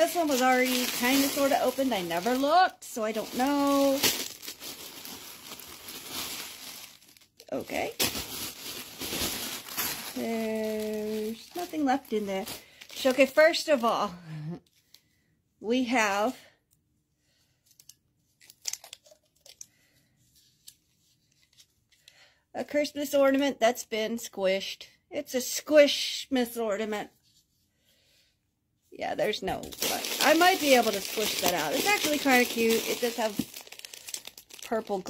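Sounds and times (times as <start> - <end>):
packaging crinkling and rustling: 0.0 - 13.9, 17.7 - 19.7, 29.3 - 35.0
plastic ornament clicks and crinkles: 17.6 - 19.8, 29.6 - 35.0.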